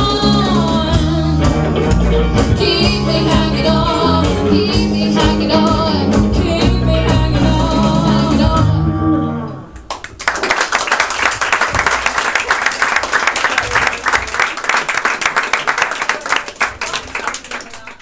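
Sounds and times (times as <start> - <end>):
two women singing: 0.0 - 1.6, 2.4 - 9.6
bass guitar: 0.0 - 9.9
drums: 0.0 - 9.9
electric guitar: 0.0 - 9.9.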